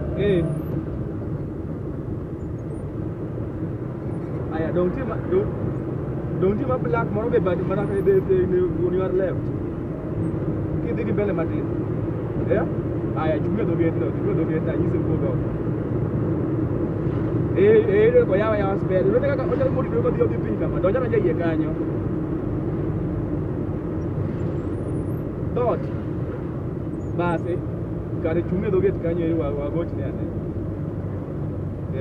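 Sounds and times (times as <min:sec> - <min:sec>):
car engine and road noise: 0:00.0 - 0:32.0.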